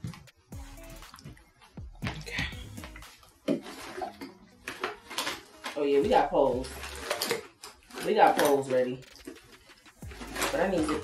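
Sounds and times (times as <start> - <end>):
rummaging through tote bag: 2.2 - 11.0.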